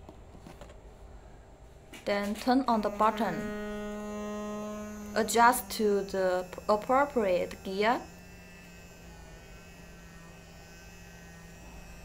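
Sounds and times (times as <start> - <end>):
face brush motor humming: 2.0 - 12.0.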